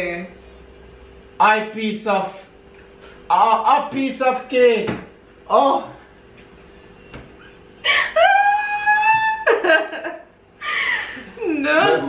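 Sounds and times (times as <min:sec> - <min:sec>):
person squealing with laughter: 0:07.8 - 0:11.2.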